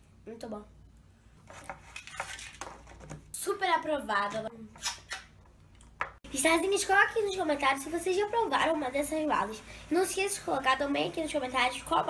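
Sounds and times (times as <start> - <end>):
girl's voice: 3.4 - 4.8, 6.3 - 12.0.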